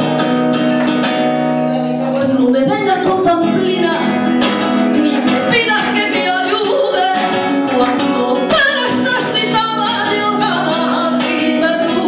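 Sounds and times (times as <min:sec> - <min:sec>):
acoustic guitar: 0:00.0 - 0:12.0
woman singing: 0:02.2 - 0:12.0.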